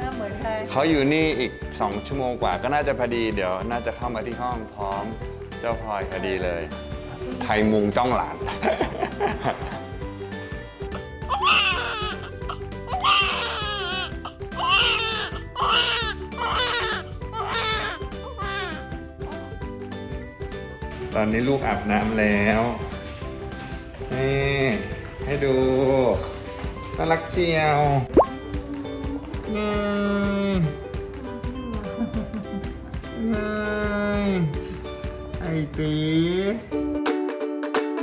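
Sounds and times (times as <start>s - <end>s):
background music: 0.0s - 38.0s
newborn baby crying: 11.2s - 19.0s
rising bloop pop effect: 28.2s - 28.4s.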